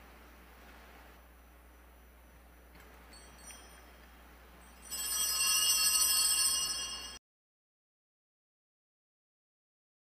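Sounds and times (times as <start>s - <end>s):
faint room hiss: 0.0s - 7.2s
bright metallic chime ringing: 3.1s - 7.2s.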